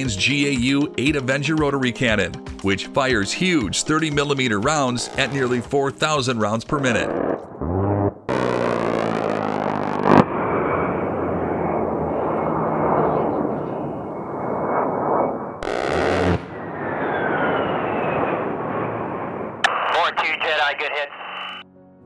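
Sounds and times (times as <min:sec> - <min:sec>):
jet engines whining: 0:03.8 - 0:07.6, 0:08.3 - 0:21.6
rotary cannon firing buzzing bursts: 0:04.9 - 0:05.7, 0:07.0 - 0:11.1, 0:15.6 - 0:16.7.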